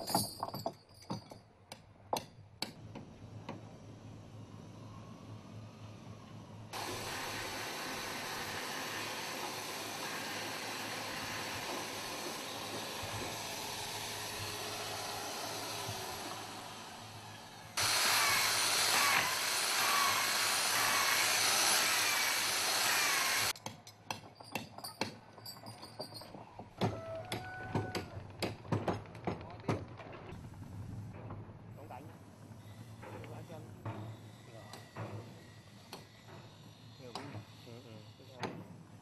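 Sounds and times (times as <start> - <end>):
electric drill: 6.7 - 23.6
handheld power tool on wood: 6.7 - 23.6.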